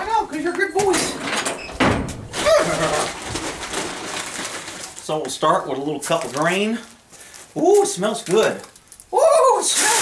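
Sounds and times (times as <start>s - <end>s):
feed bin clunks: 0.8s - 2.4s.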